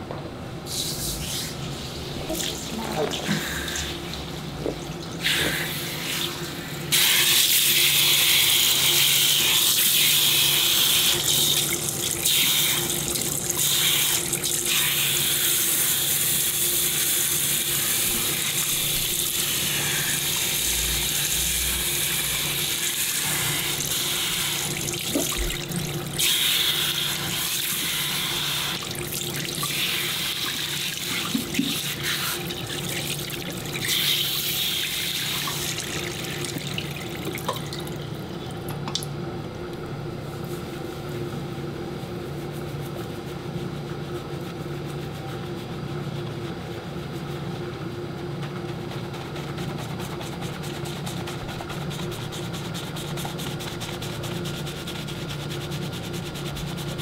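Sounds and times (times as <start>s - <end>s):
water splashing into sink: 24.7s - 26.0s, 35.4s - 39.1s.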